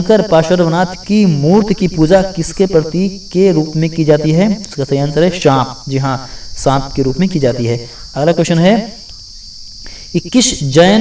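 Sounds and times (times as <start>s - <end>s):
man speaking: 0.0s - 9.1s, 10.1s - 11.0s
high-pitched hiss: 0.0s - 11.0s.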